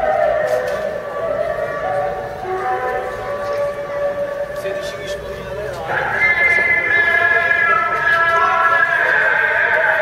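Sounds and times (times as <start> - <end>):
person chanting a melody: 0.0 - 10.0.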